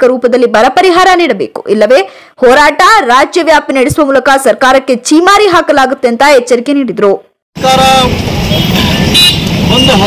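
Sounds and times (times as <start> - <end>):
road traffic noise: 7.5 - 10.0
man speaking: 7.6 - 8.1
vehicle horn toot: 7.6 - 10.0.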